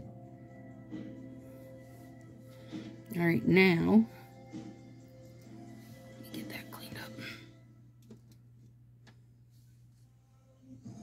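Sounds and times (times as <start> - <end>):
quiet background music: 0.0 - 11.0
faint whispering voice: 6.3 - 7.5.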